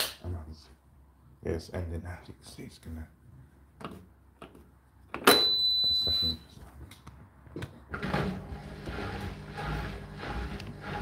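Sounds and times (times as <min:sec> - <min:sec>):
washing machine beep: 0:05.3 - 0:06.5
washing machine running: 0:08.0 - 0:11.0.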